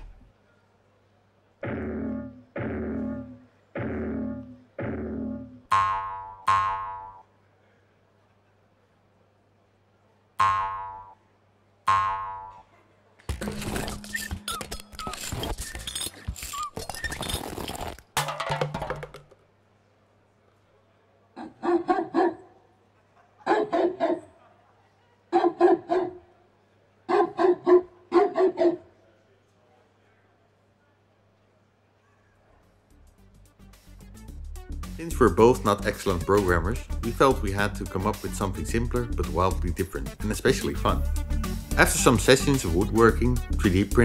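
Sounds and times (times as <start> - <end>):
twangy boing notes: 1.6 - 7.2, 10.4 - 11.2, 11.9 - 12.6
dog barking: 21.4 - 22.6, 23.4 - 24.4, 25.3 - 26.3, 27.1 - 28.9.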